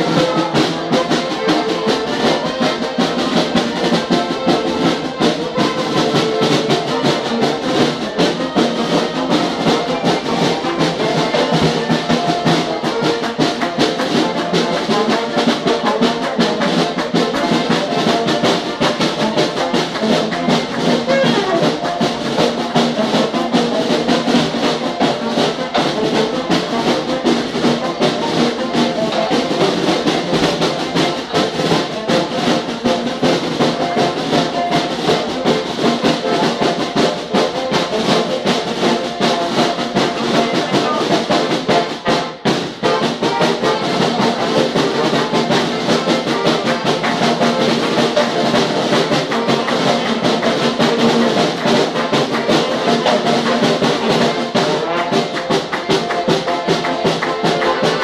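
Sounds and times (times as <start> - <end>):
marching drum beat: 0.0 - 58.0
trumpets and trombones: 0.0 - 58.0.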